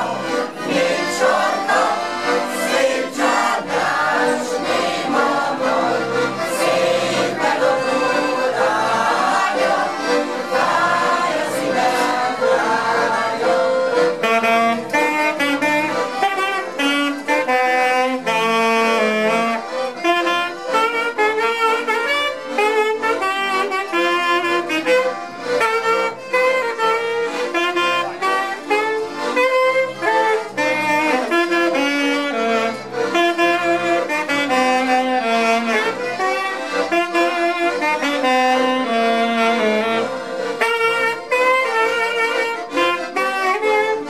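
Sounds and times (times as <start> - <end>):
alto saxophone folk melody: 0.0 - 44.0
piano accordions accompanying: 0.0 - 44.0.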